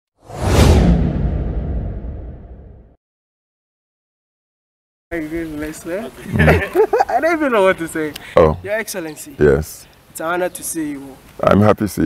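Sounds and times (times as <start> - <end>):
whoosh sound effect: 0.2 - 3.0
deep rumble: 0.3 - 3.0.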